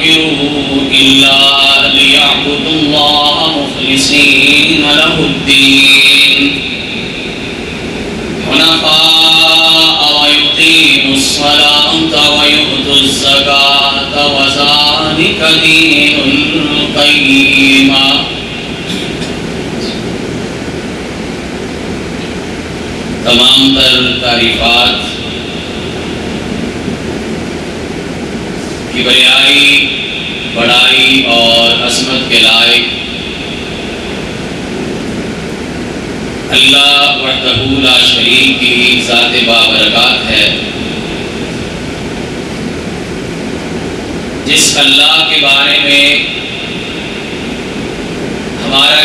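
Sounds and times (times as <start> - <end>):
steady hiss with low rumble: 0.0 - 49.0.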